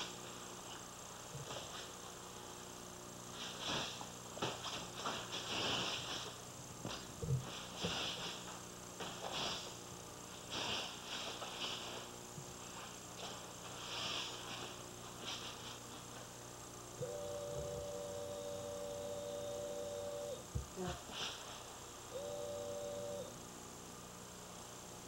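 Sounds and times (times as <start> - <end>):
mains hum: 0.0 - 25.0.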